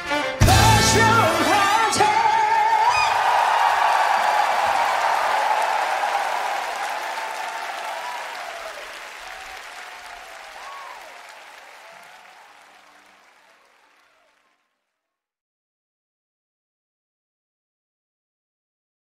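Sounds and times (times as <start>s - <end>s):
audience applauding and cheering: 0.4s - 14.7s.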